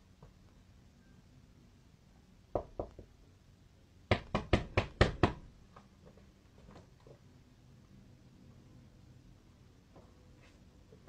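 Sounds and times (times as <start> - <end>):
hand knocking on door: 2.6 - 3.1, 4.1 - 5.4.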